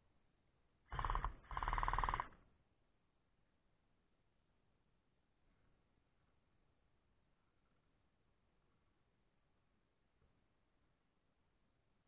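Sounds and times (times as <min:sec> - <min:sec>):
gel blaster full-auto bursts: 0:00.9 - 0:02.4.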